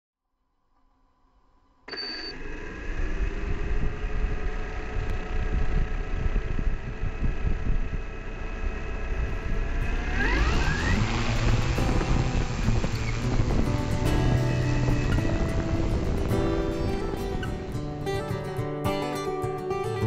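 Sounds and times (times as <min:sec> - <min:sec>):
drone propellers whirring: 0:02.3 - 0:18.4.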